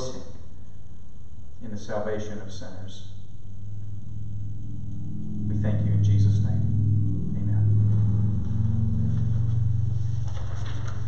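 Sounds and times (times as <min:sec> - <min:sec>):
loud low hum: 0:00.0 - 0:11.0.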